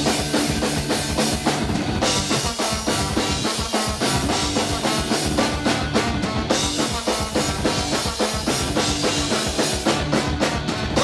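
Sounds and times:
drum kit beat: 0.0s - 11.0s
electric bass: 0.0s - 11.0s
trombone: 2.0s - 11.0s.

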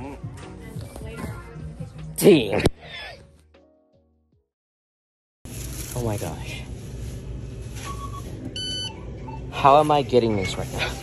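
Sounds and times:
low store hum: 5.5s - 11.0s.

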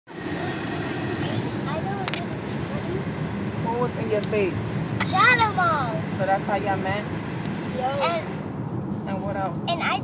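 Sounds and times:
road noise inside car: 0.1s - 10.0s.

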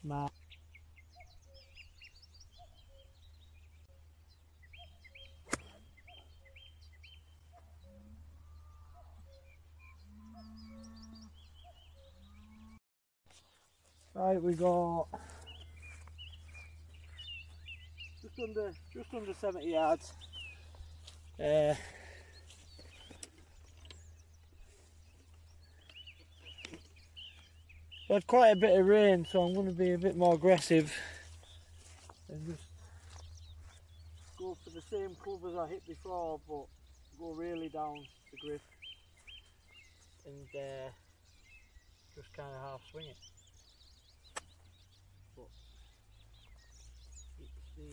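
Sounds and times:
faint birdsong: 0.0s - 47.9s
golf club striking ball: 5.4s - 5.8s.

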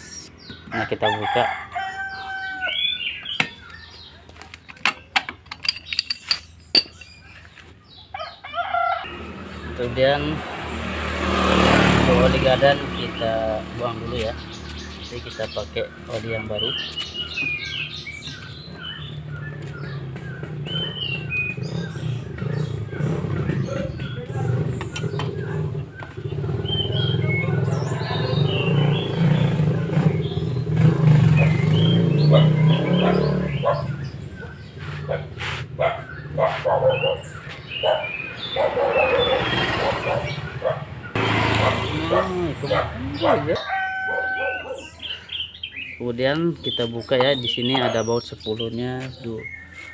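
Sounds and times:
birds chirping: 0.0s - 49.9s
wrench clinking on metal bolt: 4.7s - 7.2s.

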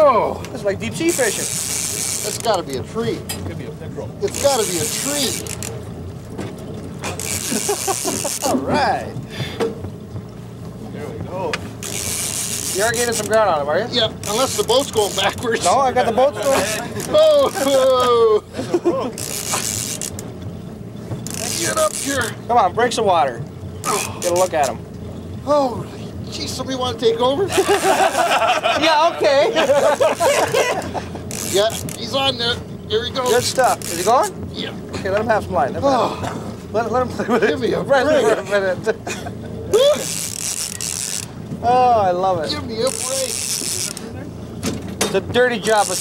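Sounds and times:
boat motor running: 0.0s - 46.0s
wind and water hiss: 0.0s - 46.0s
fishing reel drag buzzing: 0.9s - 2.8s, 4.2s - 5.9s, 7.0s - 8.6s, 11.8s - 18.2s, 19.2s - 22.6s, 23.8s - 25.3s, 27.6s - 28.4s, 29.7s - 34.4s, 39.7s - 41.4s, 42.7s - 44.1s, 45.5s - 46.0s
person laughing: 7.4s - 8.7s, 16.6s - 19.2s, 27.4s - 28.8s, 29.5s - 31.2s, 38.2s - 40.1s.

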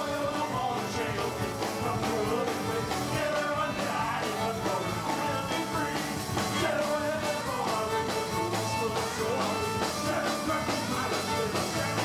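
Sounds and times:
drum kit beat: 0.0s - 12.0s
fiddle playing tune: 1.5s - 12.0s.

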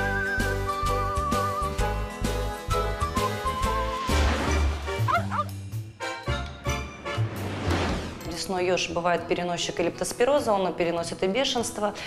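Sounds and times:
tv jingle: 2.8s - 10.1s
small dog yipping: 5.1s - 5.5s.

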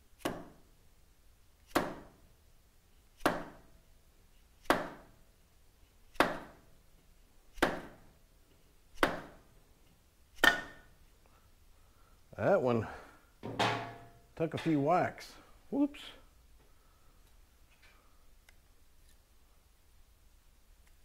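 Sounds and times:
dead blow hammer tapping metal: 13.4s - 15.0s.

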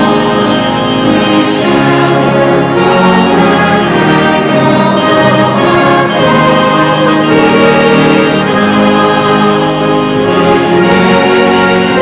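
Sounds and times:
brass band playing a hymn: 0.0s - 12.0s.

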